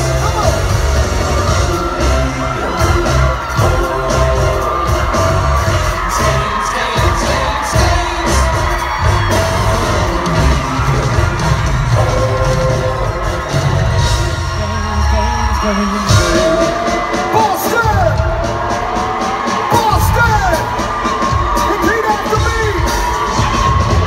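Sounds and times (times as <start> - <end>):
person singing: 0.0 - 19.0
crowd cheering: 0.0 - 24.0
heavy drum beat: 0.0 - 24.0
live pop music: 0.0 - 24.0.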